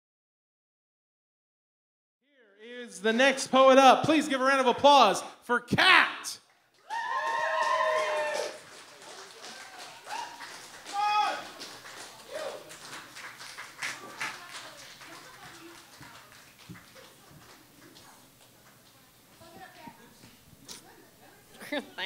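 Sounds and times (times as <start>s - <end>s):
people clapping: 6.4s - 20.4s
audience whooping and cheering: 6.8s - 12.8s.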